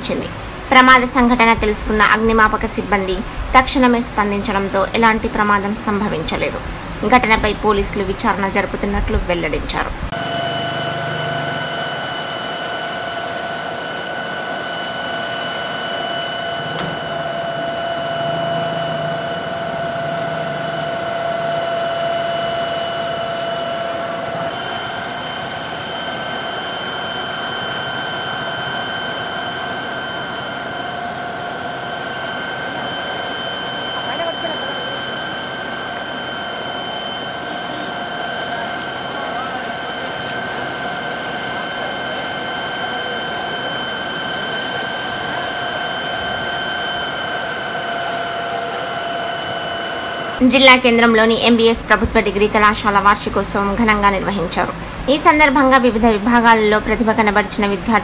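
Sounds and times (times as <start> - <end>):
high whine of pump: 0.0 - 58.0
water pump rushing: 10.2 - 50.4.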